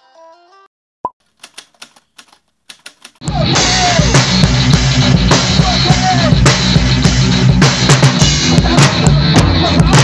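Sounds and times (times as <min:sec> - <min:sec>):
typewriter keystrokes: 0:01.2 - 0:03.2.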